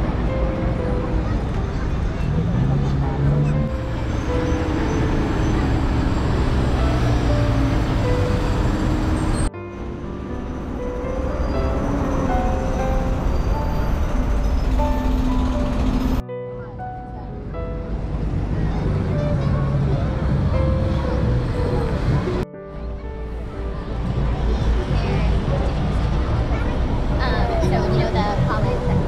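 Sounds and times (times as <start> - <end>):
city traffic and street noise: 0.0 - 29.0
light background music: 0.0 - 29.0.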